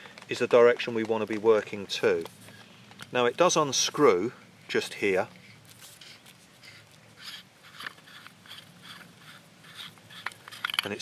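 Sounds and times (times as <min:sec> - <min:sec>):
metal threaded joint unscrewing: 0:05.4 - 0:11.0.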